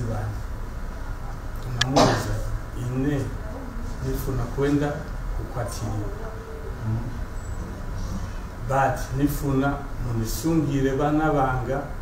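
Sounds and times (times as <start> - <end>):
man talking: 0.0 - 0.5, 1.6 - 3.4, 4.0 - 6.2, 8.6 - 12.0.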